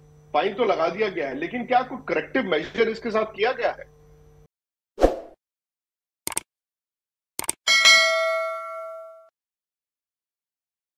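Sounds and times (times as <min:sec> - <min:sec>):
bell ding: 0:07.7 - 0:09.3.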